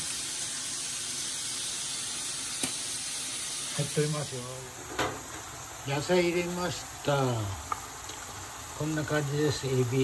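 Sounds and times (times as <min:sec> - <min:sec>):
food sizzling in a hot pan: 0:00.0 - 0:10.0.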